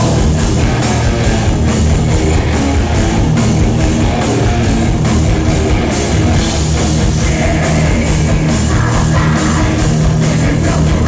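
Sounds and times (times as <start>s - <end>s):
heavy rock band playing: 0.0s - 11.0s.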